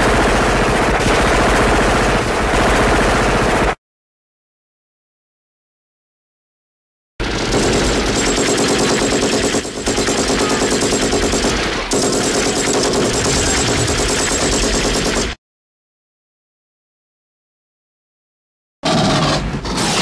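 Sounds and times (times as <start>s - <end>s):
loud fast rattle of bangs: 0.0s - 3.8s, 7.2s - 15.4s.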